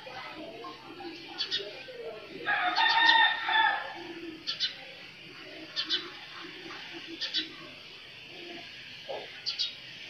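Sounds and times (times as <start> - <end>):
rooster crowing: 2.5 - 4.0
high bird chirps: 9.4 - 9.8.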